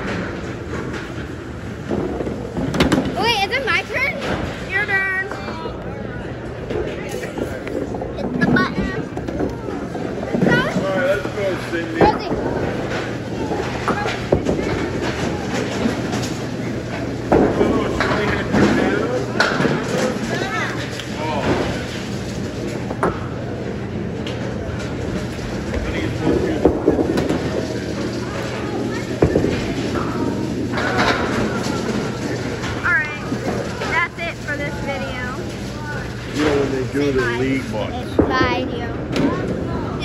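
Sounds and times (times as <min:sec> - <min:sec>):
balls rolling on wooden lanes: 0:00.0 - 0:40.0
people's voices: 0:25.6 - 0:40.0.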